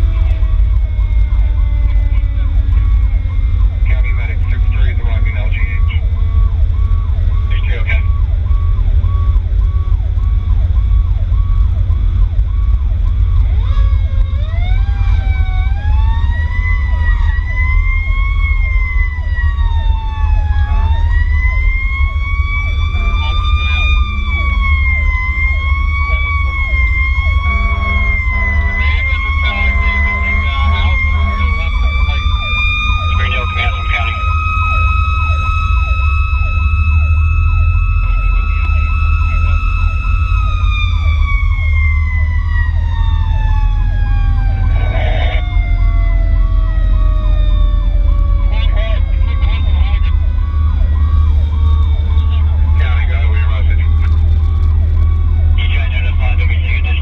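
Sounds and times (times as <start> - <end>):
faster repeating siren tone: 0.0 - 57.0
fire truck siren wailing: 0.0 - 57.0
truck engine and road rumble: 0.0 - 57.0
horn blasts: 27.2 - 32.3.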